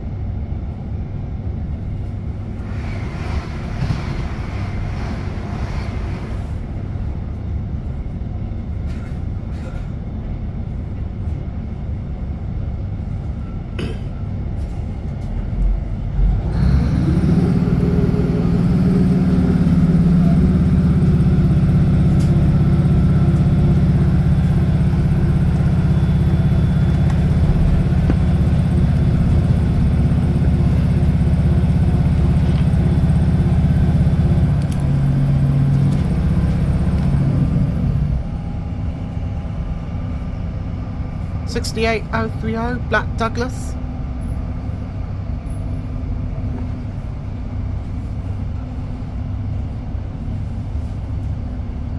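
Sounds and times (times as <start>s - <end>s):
train diesel engine droning: 0.0s - 51.9s
train wheels rumbling on track: 0.0s - 51.9s.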